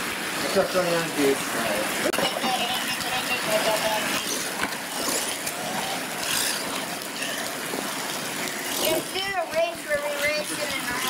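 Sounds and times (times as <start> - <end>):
rain hiss: 0.0 - 11.0
toy truck motors running: 2.2 - 7.4
tyres churning mud: 2.2 - 11.0.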